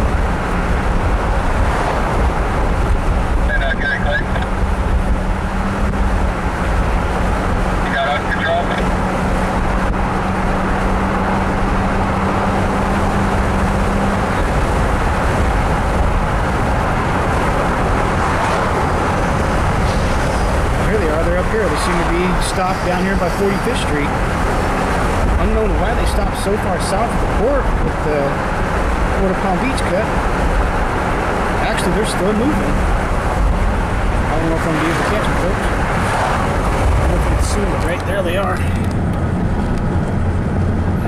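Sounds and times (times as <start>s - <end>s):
tyre and engine road noise: 0.0s - 41.0s.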